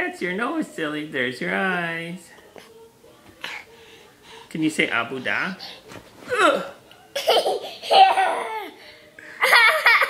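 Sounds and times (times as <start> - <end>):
toddler laughing: 7.1 - 8.8, 9.4 - 10.0.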